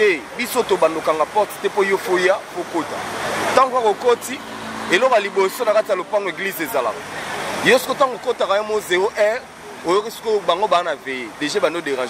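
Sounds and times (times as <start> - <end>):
man talking: 0.0 - 12.0
car driving past: 2.7 - 7.8.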